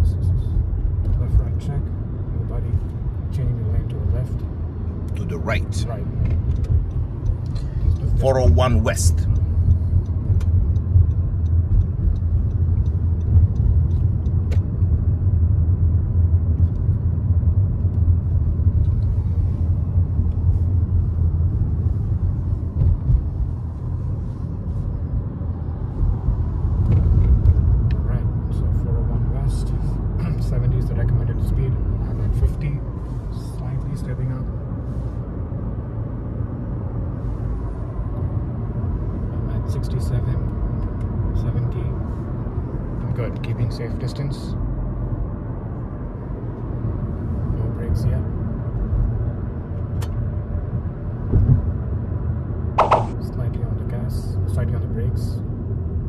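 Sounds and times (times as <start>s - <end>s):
car road rumble from inside: 0.0s - 56.0s.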